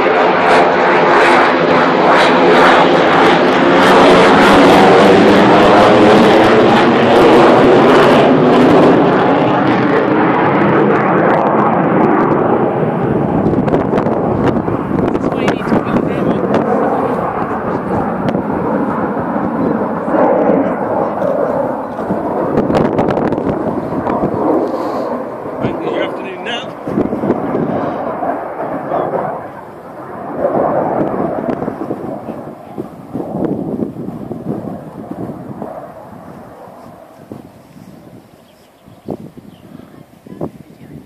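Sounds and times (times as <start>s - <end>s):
jet engines rumbling in flight: 0.0s - 41.0s.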